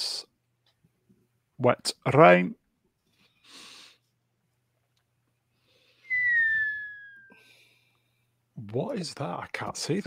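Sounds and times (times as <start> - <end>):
high whistle sliding downward: 6.0 - 7.5.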